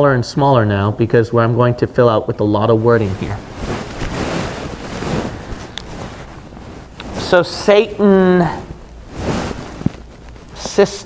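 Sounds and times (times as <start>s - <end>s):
rustling on microphone: 2.6s - 11.0s.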